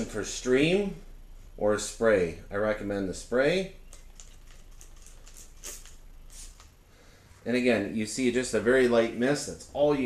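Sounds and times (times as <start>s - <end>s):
spray bottle spritzes: 5.3s - 6.7s.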